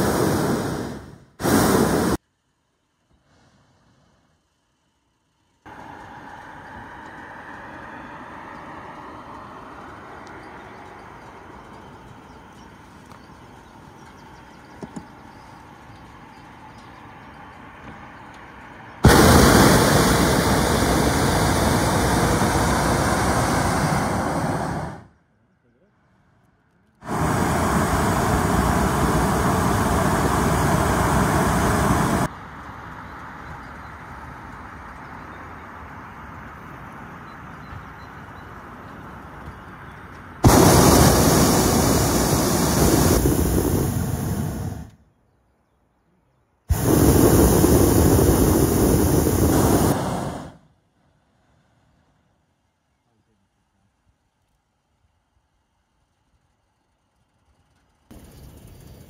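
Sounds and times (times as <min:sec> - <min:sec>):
propane burner firing: 0:00.0 - 0:02.2, 0:19.0 - 0:25.1, 0:27.0 - 0:32.3, 0:40.4 - 0:44.9, 0:46.7 - 0:50.6.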